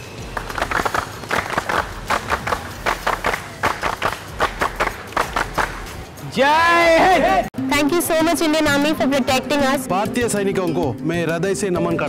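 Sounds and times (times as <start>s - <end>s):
people clapping in unison: 0.2s - 6.0s.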